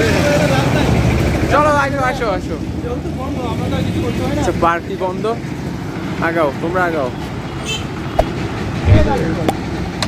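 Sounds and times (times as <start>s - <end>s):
traffic hum: 0.0s - 10.0s
dull thump: 8.2s - 9.6s.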